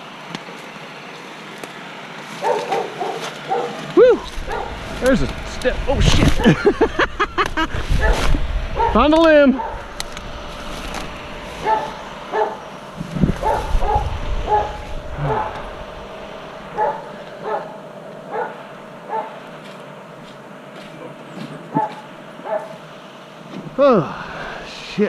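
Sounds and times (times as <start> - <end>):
dog barking: 2.4 - 3.8, 4.5 - 4.8, 8.8 - 9.0, 9.6 - 9.8, 11.6 - 12.6, 13.4 - 15.6, 16.8 - 19.4, 21.7 - 22.8.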